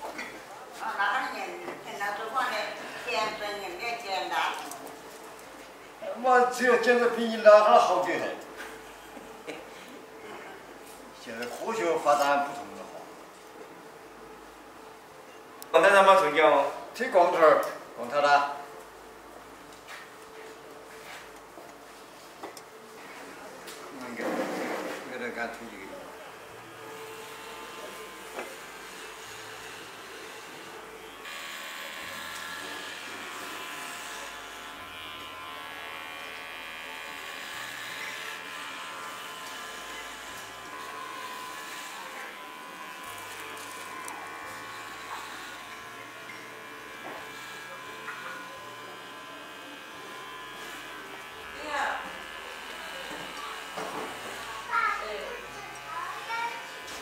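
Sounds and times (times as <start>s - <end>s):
electric hair clippers buzzing: 23.9s - 57.0s.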